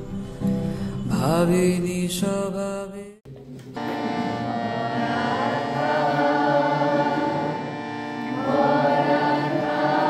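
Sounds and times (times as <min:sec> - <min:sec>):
steady drone: 0:03.8 - 0:10.0
person singing chant-like melody: 0:03.9 - 0:10.0.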